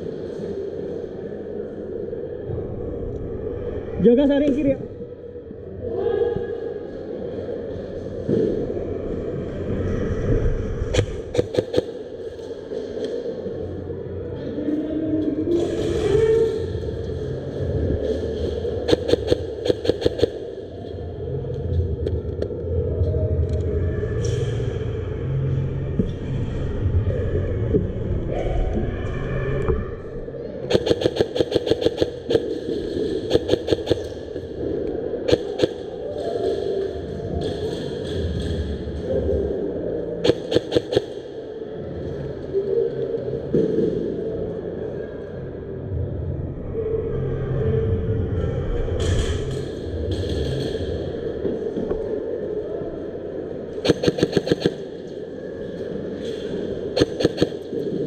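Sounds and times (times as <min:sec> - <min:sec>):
steady low rumble: 0:16.7 - 0:42.6, 0:43.3 - 0:58.0
airsoft guns firing bursts: 0:18.9 - 0:20.3, 0:30.7 - 0:32.6, 0:33.3 - 0:34.1, 0:35.3 - 0:35.8, 0:40.2 - 0:41.2, 0:53.8 - 0:54.9, 0:57.0 - 0:57.6.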